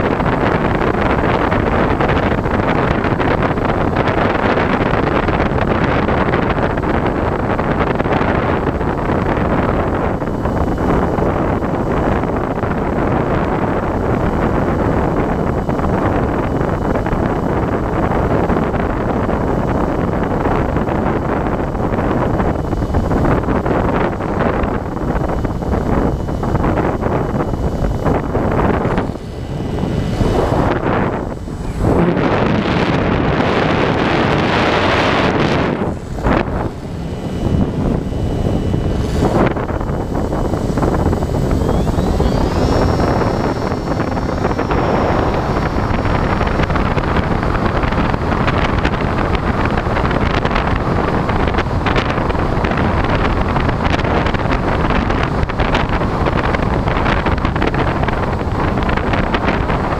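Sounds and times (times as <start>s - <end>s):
wind rushing over microphone: 0.0s - 59.9s
faint high steady tone: 35.9s - 48.3s.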